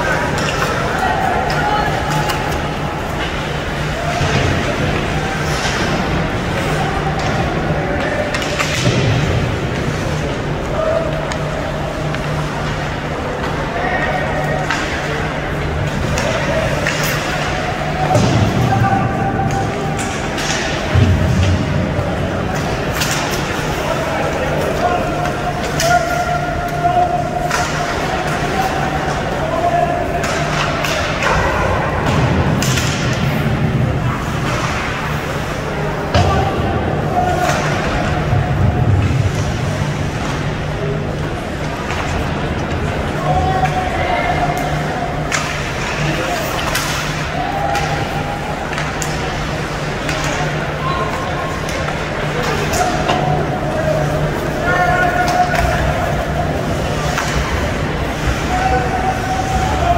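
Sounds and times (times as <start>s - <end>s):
puck and sticks hitting boards: 0.1s - 59.9s.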